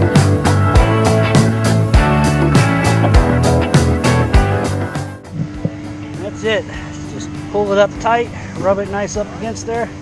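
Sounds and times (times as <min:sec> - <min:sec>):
guitar music: 0:00.0 - 0:06.6
low hum: 0:00.8 - 0:10.0.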